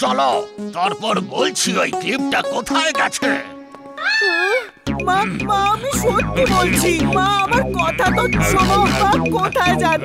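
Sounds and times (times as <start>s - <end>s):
background music: 0.0s - 10.0s
loud music beat: 4.9s - 10.0s.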